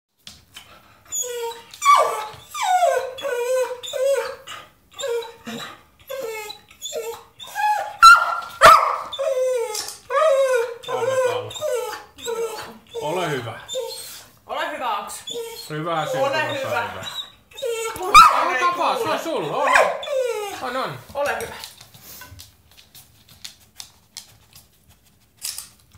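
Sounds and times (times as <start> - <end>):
dog whining and yowling: 1.1 - 14.3, 15.2 - 20.6.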